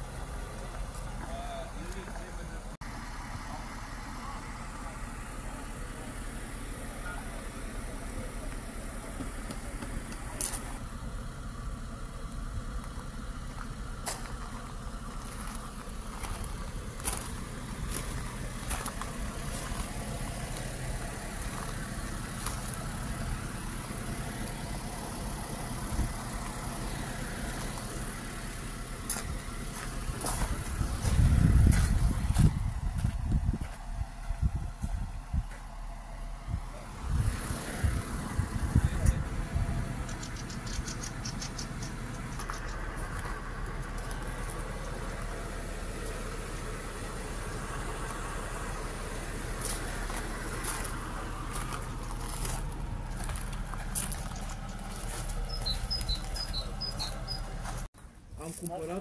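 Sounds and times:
car engine idling: 0.0s - 59.0s.

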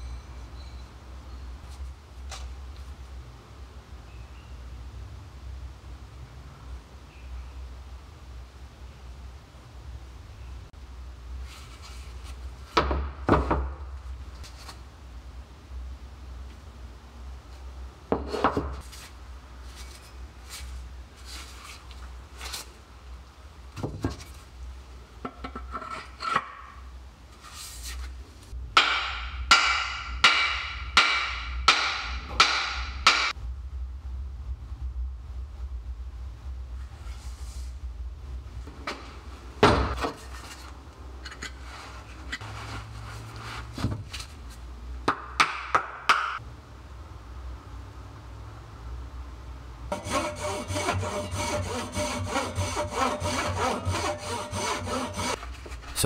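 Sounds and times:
hammer striking axe head: 28.8s - 33.3s
hand saw cutting wood: 49.9s - 55.4s.

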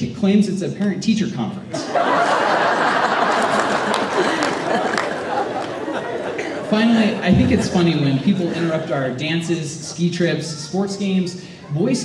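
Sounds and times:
audience laughter: 1.7s - 9.2s
crowd murmuring chatter: 1.7s - 12.0s.

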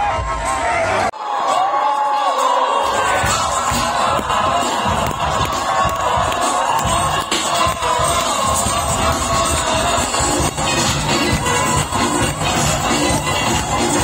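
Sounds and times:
crowd cheering and shouting: 0.0s - 14.0s
loud amplified music: 0.0s - 14.0s.

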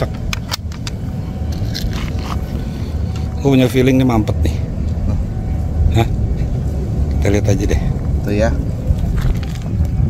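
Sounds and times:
low background rumble: 0.0s - 10.0s
air rifle handling clicks: 0.1s - 2.5s.

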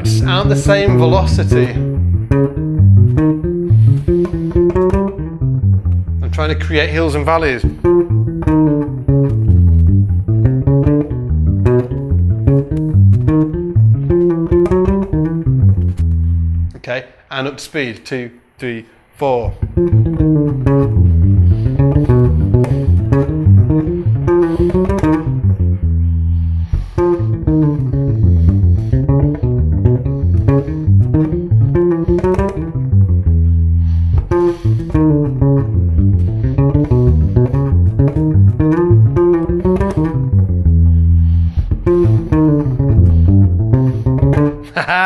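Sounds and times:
bass guitar played fingerstyle: 0.0s - 16.8s, 19.5s - 45.0s.

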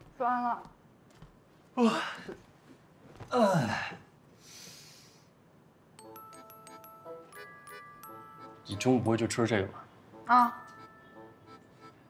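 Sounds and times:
faint breathy exhale: 4.4s - 5.3s.

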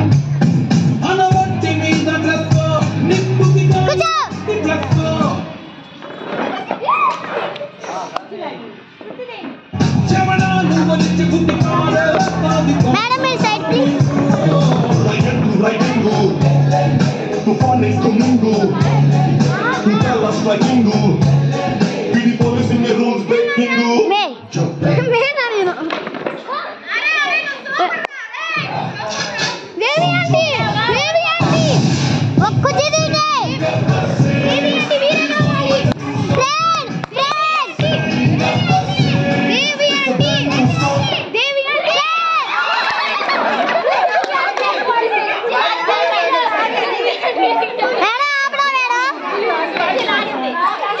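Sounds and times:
women and children talking: 3.7s - 5.2s, 6.3s - 9.7s, 11.6s - 16.8s, 17.5s - 21.1s, 22.9s - 31.8s, 32.4s - 33.8s, 34.4s - 42.7s, 43.6s - 51.0s.

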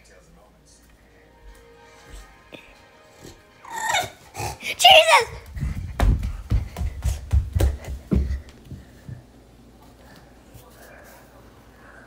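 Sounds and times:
dog whining call: 3.7s - 4.2s.

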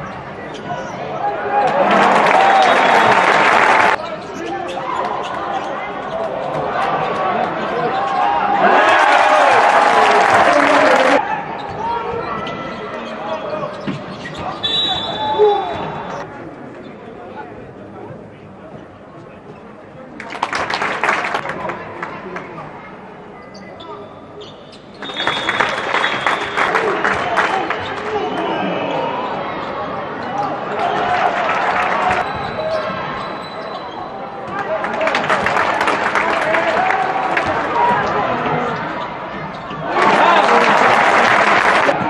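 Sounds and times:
arena crowd noise with shouts: 0.0s - 16.5s, 25.0s - 42.0s
referee's whistle blast: 14.6s - 16.1s, 25.0s - 26.6s.

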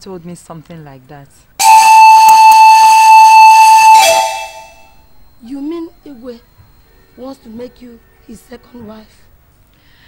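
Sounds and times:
sustained high synthesizer note: 1.6s - 4.9s.

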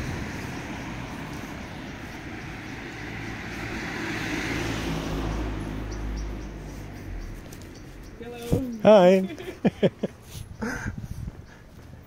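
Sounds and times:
car driving past: 0.0s - 8.2s.

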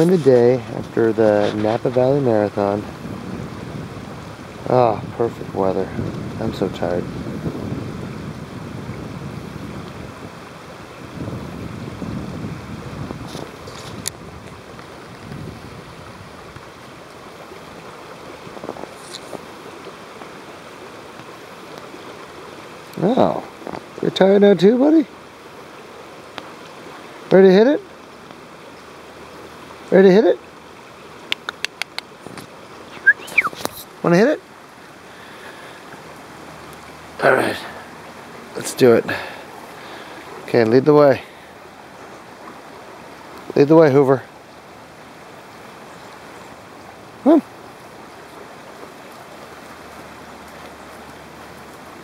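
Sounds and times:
dog whining: 33.0s - 33.6s.

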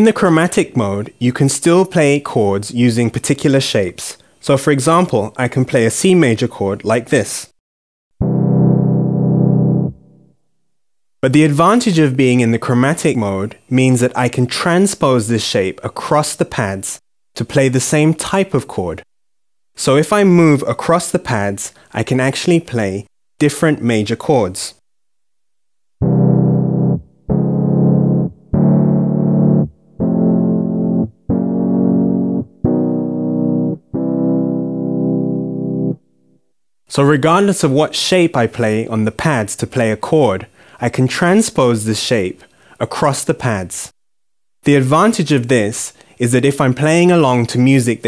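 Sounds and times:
synth chord: 8.2s - 10.4s, 26.0s - 36.2s.

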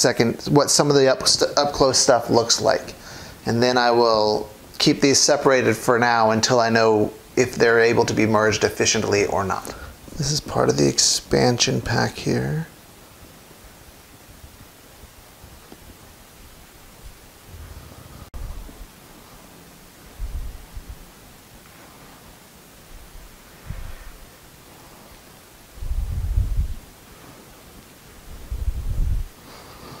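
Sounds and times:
steady hiss: 0.0s - 30.0s.

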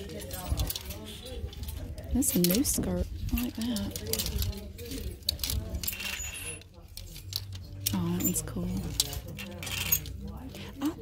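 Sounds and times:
clothes hangers clicking on rail: 0.0s - 11.0s
faint voices of shoppers: 0.0s - 11.0s.

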